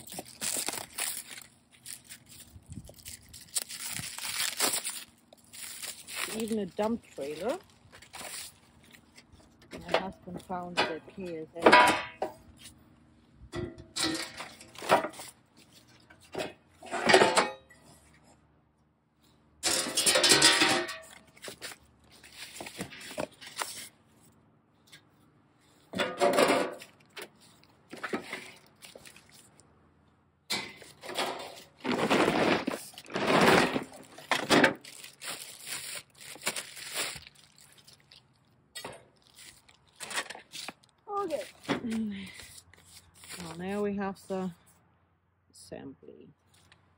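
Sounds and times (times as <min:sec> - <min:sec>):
packing sheets rustling: 0:00.0 - 0:09.2, 0:30.8 - 0:38.2
metal panels scraping and clanking: 0:19.6 - 0:21.5, 0:25.8 - 0:28.6, 0:30.5 - 0:34.8.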